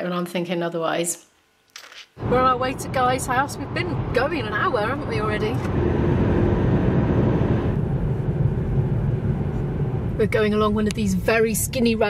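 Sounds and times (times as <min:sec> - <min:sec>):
car cabin road rumble: 0:02.2 - 0:12.0.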